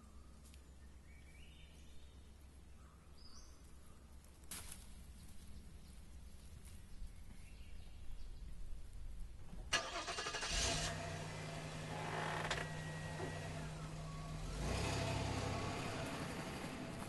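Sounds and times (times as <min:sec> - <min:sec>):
car engine starting and idling: 0:09.7 - 0:17.0.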